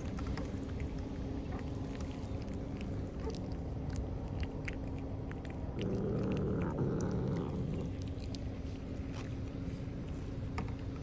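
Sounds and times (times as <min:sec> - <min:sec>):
cat growling: 0:02.7 - 0:08.4.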